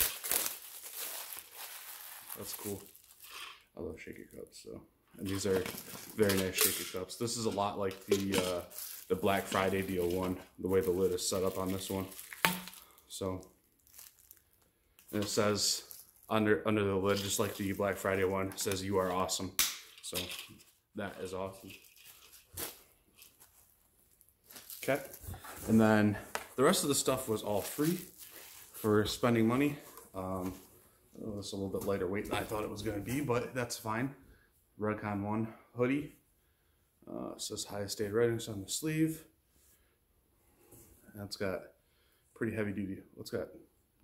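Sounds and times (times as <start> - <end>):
plastic wrapping crinkling: 0.0 - 3.6, 5.2 - 19.4, 21.1 - 30.7
soft clothing rustle: 0.0 - 4.4, 5.2 - 19.4, 20.1 - 33.9.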